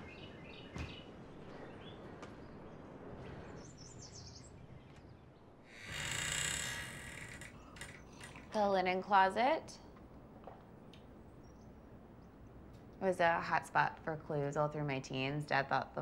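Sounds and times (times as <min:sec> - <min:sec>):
door creaking open: 0:05.7 - 0:08.6.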